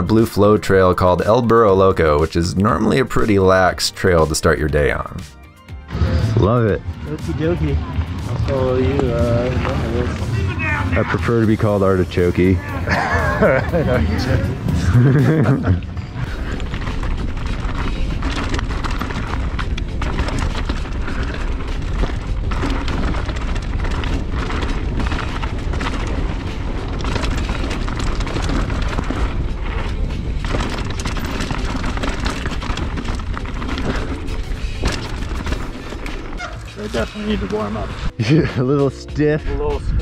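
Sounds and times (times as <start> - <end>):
mountain bike rumbling and rattling: 0.0 - 38.9.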